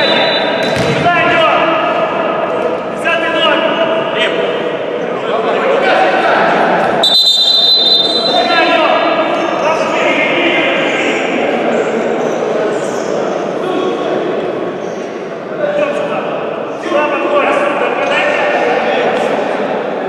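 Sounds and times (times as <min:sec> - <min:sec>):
voices calling out in a hall: 0:00.0 - 0:20.0.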